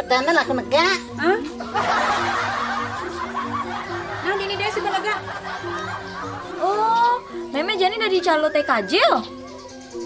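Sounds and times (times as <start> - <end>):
background music: 0.0 - 10.0
group of people laughing: 1.7 - 7.3.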